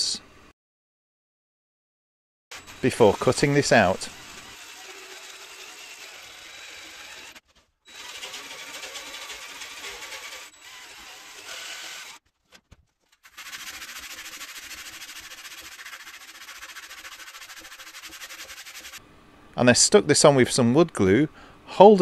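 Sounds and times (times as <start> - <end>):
jigsaw cutting plywood: 2.5 - 12.2, 13.2 - 19.0.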